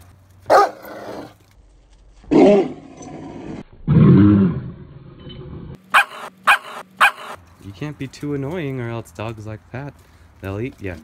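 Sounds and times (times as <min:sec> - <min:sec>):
dog sharp barks: 0:00.5 - 0:01.2, 0:05.9 - 0:07.4
dog growling barks: 0:00.5 - 0:01.3, 0:05.9 - 0:07.4.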